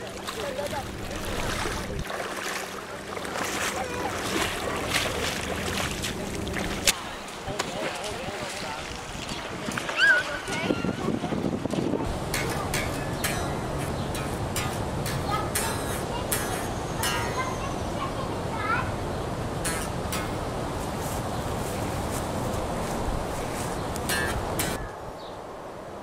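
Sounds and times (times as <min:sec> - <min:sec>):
faint voices: 0:00.0 - 0:20.3
water sloshing: 0:00.0 - 0:24.8
wind on microphone: 0:08.6 - 0:14.4.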